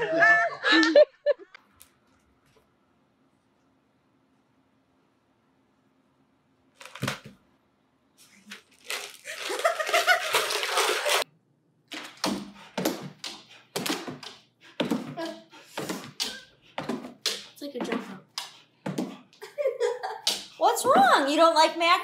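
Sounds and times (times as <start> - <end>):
person laughing hard: 0.0 - 1.5, 9.3 - 11.2.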